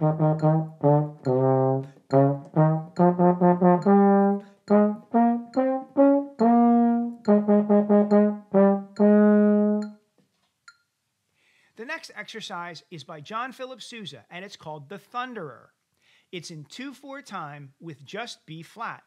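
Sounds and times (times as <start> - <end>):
baritone horn playing: 0.0 - 9.9.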